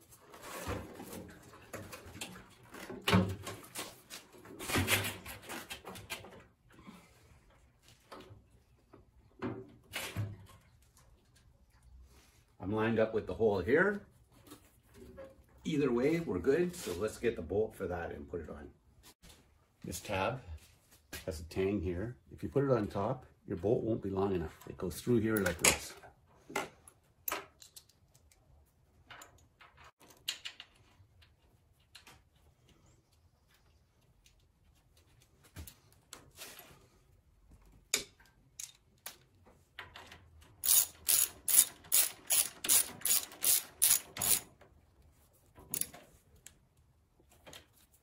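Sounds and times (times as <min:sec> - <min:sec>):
tools and metal parts tapping: 0:37.9 - 0:44.5
socket ratchet clicking: 0:40.6 - 0:44.4.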